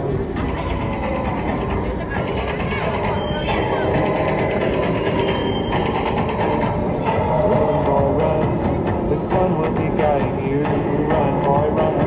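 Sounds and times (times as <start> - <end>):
crowd chatter: 0.0 - 12.0
low traffic rumble: 0.0 - 12.0.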